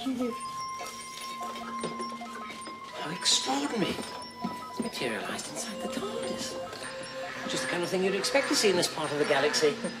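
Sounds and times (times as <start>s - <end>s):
held synthesized tones: 0.0s - 10.0s.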